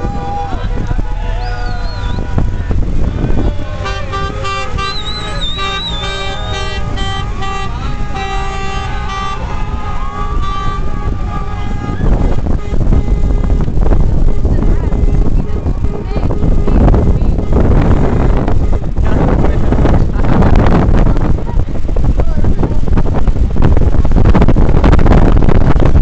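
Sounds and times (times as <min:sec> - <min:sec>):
car horns honking: 0:00.0 - 0:21.4
traffic rumble: 0:00.0 - 0:26.0.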